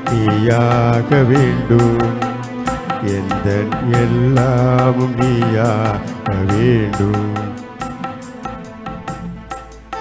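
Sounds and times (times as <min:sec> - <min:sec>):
solo voice singing a hymn: 0:00.0 - 0:07.7
instrumental accompaniment: 0:00.0 - 0:10.0
light percussion beat: 0:00.0 - 0:10.0.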